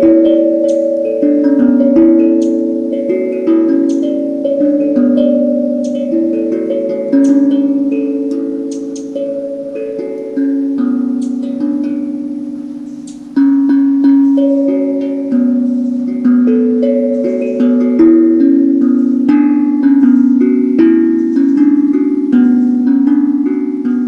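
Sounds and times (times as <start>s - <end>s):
handpan melody: 0.0s - 24.0s.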